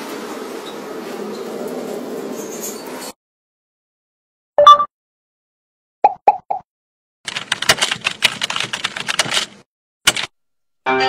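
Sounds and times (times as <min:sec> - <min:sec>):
rapid clicks: 0:07.3 - 0:10.3.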